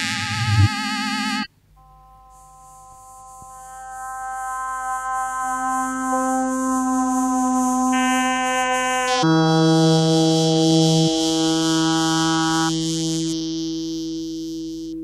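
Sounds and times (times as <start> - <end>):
pure tones stacking into chord: 0.0 - 1.5.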